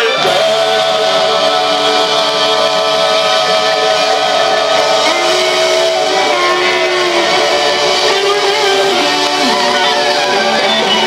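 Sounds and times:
live rock band playing: 0.0 - 11.0
long held notes: 0.0 - 11.0.

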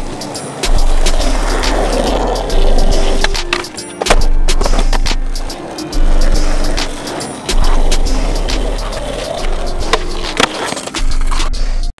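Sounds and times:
skateboard clack: 0.0 - 11.5
skateboard wheels rolling on pavement: 0.0 - 11.5.

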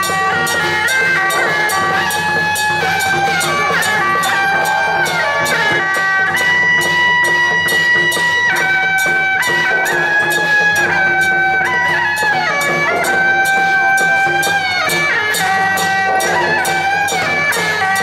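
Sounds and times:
reed pipe melody: 0.0 - 18.0
steady percussion beat: 0.0 - 18.0.

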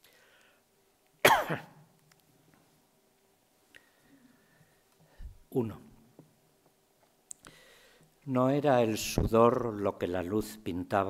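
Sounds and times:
man coughing: 1.2 - 1.8.

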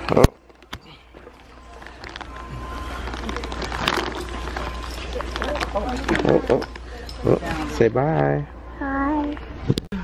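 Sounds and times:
steady low hum: 0.0 - 10.0
shopping cart rattling: 2.9 - 6.8.

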